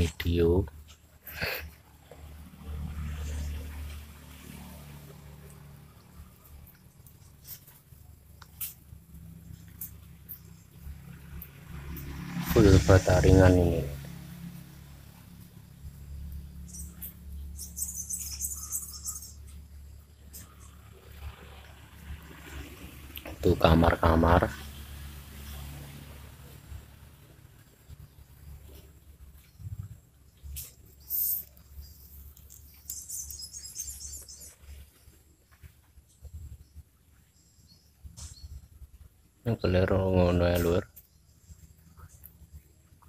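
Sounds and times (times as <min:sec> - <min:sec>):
small birds chirping: 0:00.0 - 0:43.0
small animal twittering chirps: 0:15.7 - 0:21.3, 0:30.5 - 0:35.1.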